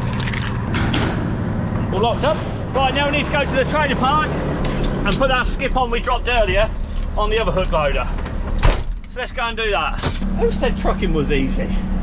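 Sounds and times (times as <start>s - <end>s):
low engine hum: 0.0s - 12.0s
keys jangling: 0.1s - 0.6s, 4.6s - 5.2s.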